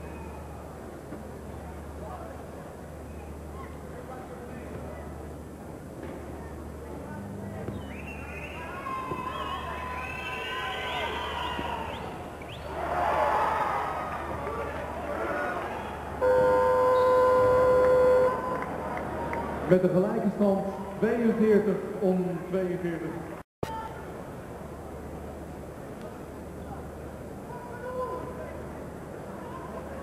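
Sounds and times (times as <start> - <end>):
crowd shouting and cheering: 8.1 - 19.7
electronic game buzzer: 16.2 - 18.5.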